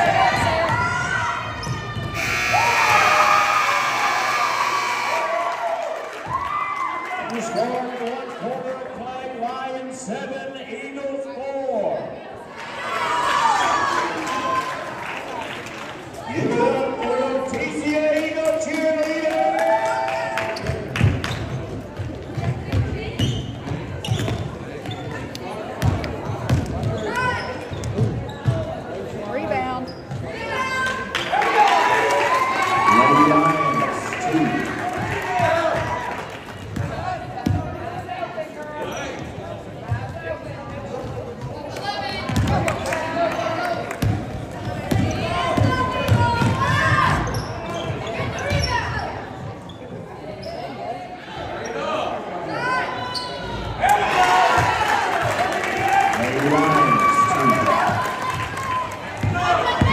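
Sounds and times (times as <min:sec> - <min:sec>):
voices in reverberant gym: 0:00.0 - 0:59.9
sneakers squeaking on court: 0:21.3 - 0:28.8, 0:29.8 - 0:30.3, 0:46.4 - 0:50.9.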